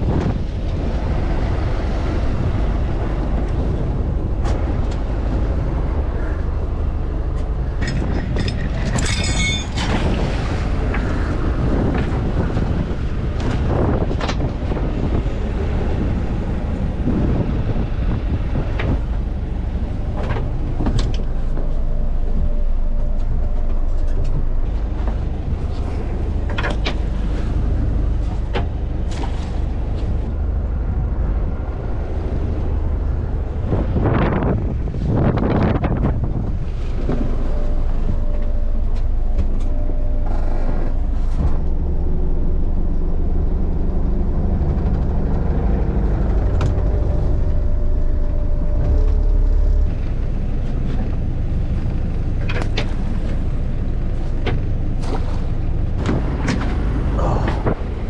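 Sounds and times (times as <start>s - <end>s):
boat engine running: 0.0s - 58.0s
hull and water noise: 0.0s - 58.0s.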